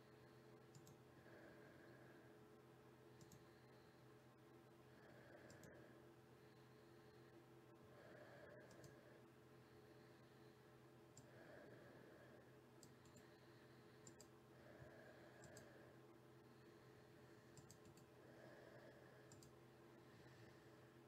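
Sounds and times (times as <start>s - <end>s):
low steady hum: 0.0s - 21.0s
computer mouse clicks: 0.7s - 1.0s, 3.2s - 3.6s, 5.4s - 5.8s, 8.6s - 9.0s, 11.1s - 11.3s, 12.8s - 13.3s, 14.0s - 15.8s, 17.5s - 18.1s, 19.2s - 19.6s.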